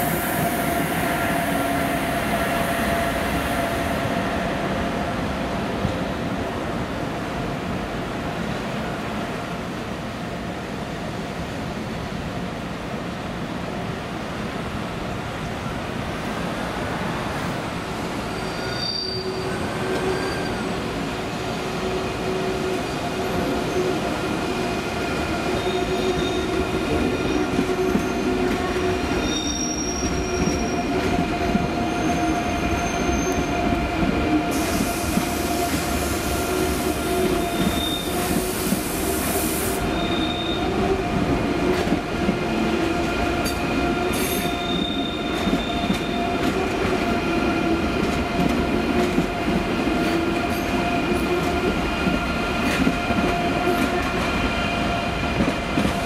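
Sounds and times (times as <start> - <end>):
electric train whine: 0.0 - 7.8
high wheel squeals: 18.3 - 20.8, 25.6 - 28.4, 29.1 - 33.6, 36.8 - 38.7, 39.8 - 40.8, 44.1 - 46.3
hiss: 34.5 - 37.1, 37.7 - 40.0.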